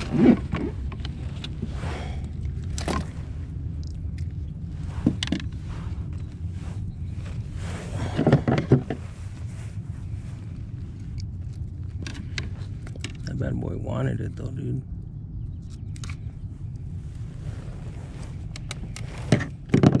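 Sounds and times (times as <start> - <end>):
steady low rumble: 0.0 - 20.0
knocks and rustles of handling: 2.4 - 13.4, 17.7 - 20.0.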